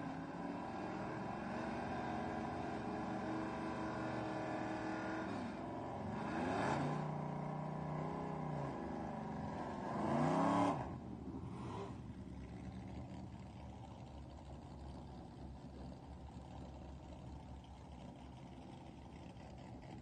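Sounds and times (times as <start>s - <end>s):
car engine idling and revving: 0.0s - 20.0s.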